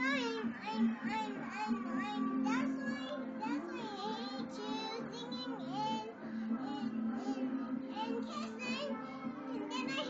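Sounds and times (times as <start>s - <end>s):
child singing with music: 0.0s - 10.0s.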